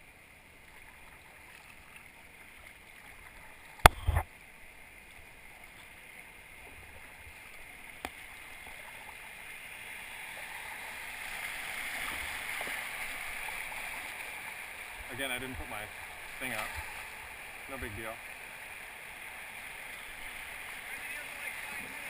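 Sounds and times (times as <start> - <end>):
river rapid rushing water: 7.3 - 22.0.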